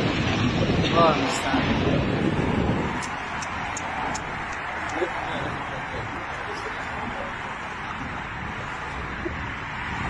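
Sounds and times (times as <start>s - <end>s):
street traffic: 0.0s - 10.0s
wind rumbling on microphone: 0.0s - 10.0s.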